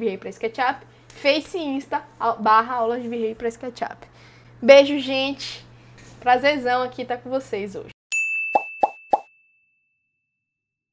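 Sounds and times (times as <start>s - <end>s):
bright high ding: 8.2s - 9.9s.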